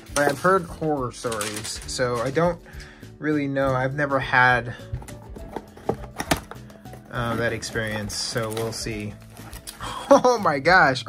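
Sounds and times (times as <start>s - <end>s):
faint background music: 0.0s - 11.0s
foil pack crinkling and clicking: 0.1s - 2.5s, 5.1s - 10.0s.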